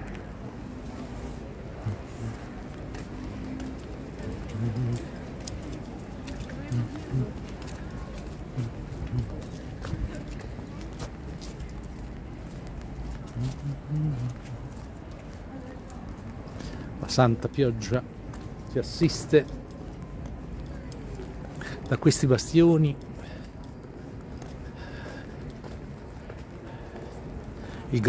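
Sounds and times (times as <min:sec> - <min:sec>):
indistinct voices: 0:01.7 - 0:11.6.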